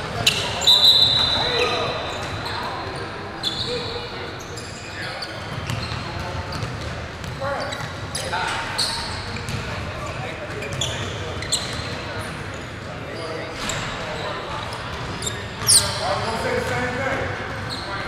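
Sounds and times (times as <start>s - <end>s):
sneakers squeaking: 0.0s - 18.0s
voices echoing in hall: 0.0s - 18.0s.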